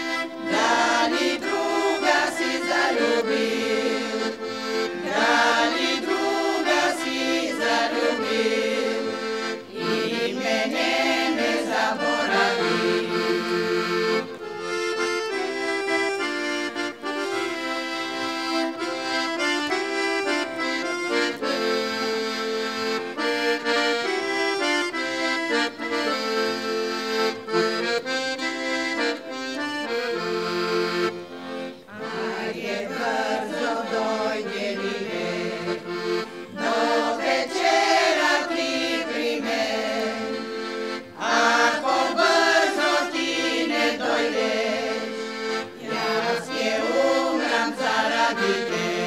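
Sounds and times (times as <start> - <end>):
women's choir singing: 0.0 - 14.3, 31.9 - 49.0
piano accordion playing: 0.0 - 49.0.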